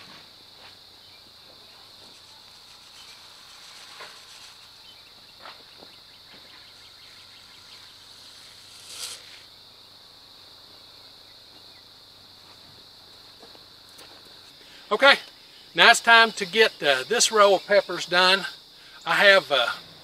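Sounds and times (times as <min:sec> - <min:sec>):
high-pitched insect drone: 0:00.6 - 0:10.1.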